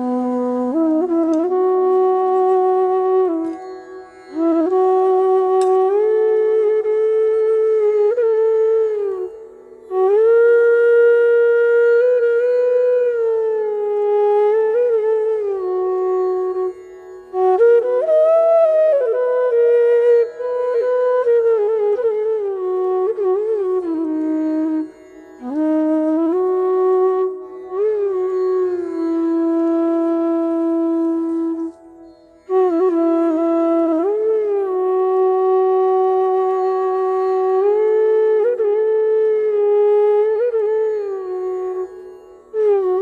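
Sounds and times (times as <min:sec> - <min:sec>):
bamboo flute melody: 0:00.0 - 0:43.0
bamboo flute held note: 0:05.0 - 0:06.0.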